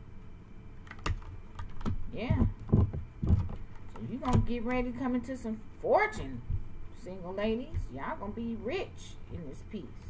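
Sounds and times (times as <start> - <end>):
cards clicking and tapping: 0.8 - 4.5.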